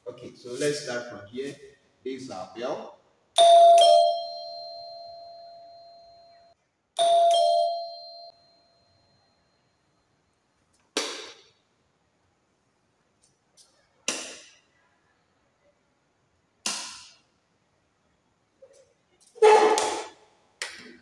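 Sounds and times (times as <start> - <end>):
two-tone doorbell chime: 3.4 - 9.6.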